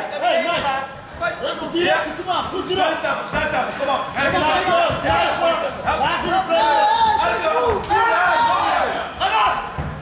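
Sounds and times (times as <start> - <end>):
thud: 9.7 - 10.0.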